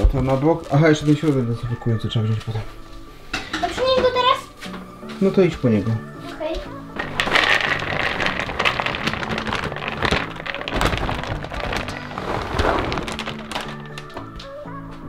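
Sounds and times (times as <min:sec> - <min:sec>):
background music: 0:00.0 - 0:15.0
pellets pouring into plastic tray: 0:07.0 - 0:14.3.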